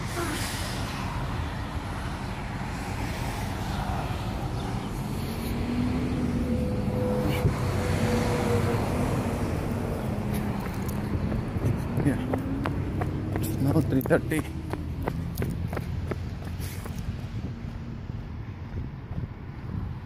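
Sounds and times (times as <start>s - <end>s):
road traffic rumble: 0.0s - 20.0s.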